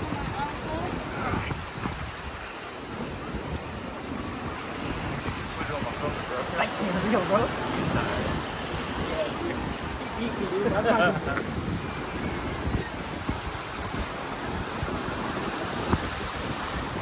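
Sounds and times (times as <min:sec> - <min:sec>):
surf washing: 0:00.0 - 0:17.0
wind buffeting microphone: 0:00.0 - 0:17.0.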